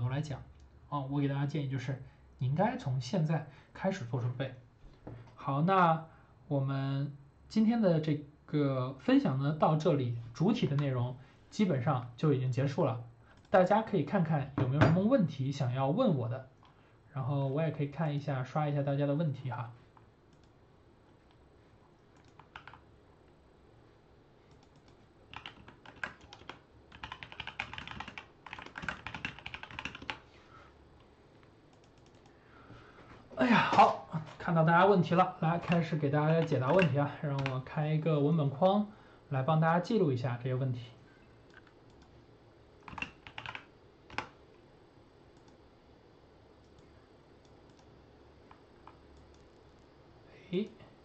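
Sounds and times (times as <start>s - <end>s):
computer keys clicking: 20.3s - 20.6s, 22.0s - 22.8s, 24.5s - 30.2s, 31.7s - 32.4s, 35.6s - 37.6s, 41.5s - 42.2s, 42.8s - 44.4s, 46.6s - 47.9s, 48.5s - 49.6s.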